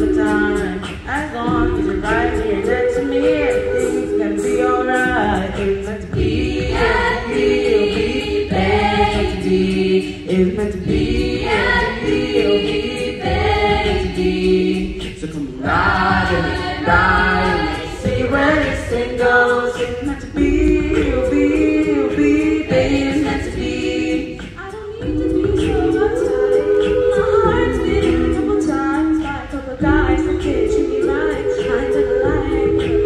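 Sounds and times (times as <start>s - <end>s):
a cappella group singing in harmony: 0.0s - 33.0s.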